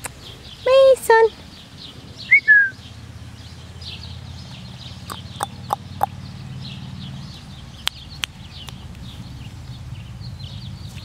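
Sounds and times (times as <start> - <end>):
small birds chirping: 0.0 - 11.0
short falling whistle: 2.3 - 2.8.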